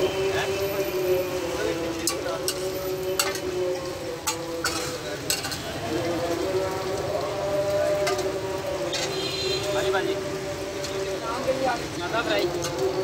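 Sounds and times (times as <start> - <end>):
food sizzling on a griddle: 0.0 - 13.0
spatula clacking on metal griddle: 2.0 - 3.5, 4.2 - 5.6.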